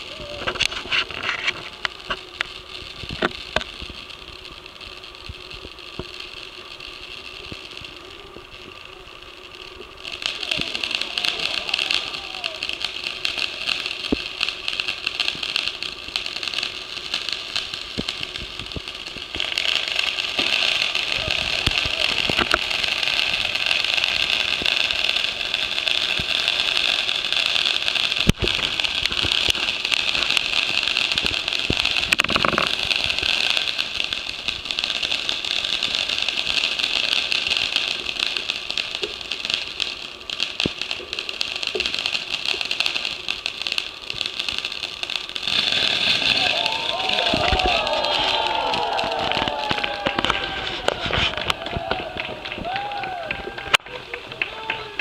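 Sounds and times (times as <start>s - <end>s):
fireworks fountains hissing: 0.0s - 55.0s.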